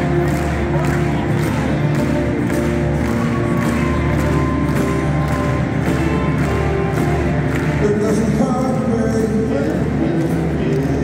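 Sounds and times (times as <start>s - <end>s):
live rock band playing: 0.0s - 9.4s.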